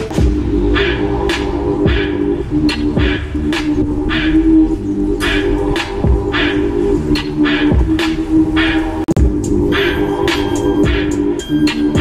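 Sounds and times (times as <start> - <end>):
deep kick drum thumps: 0.0 - 0.6, 9.2 - 9.4
sustained synth chord: 0.0 - 12.0.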